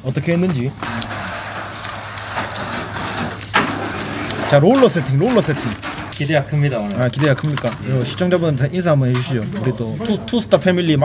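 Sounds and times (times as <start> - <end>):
paper bag crinkle: 0.8 - 8.4
paper bag rustling: 0.8 - 8.6.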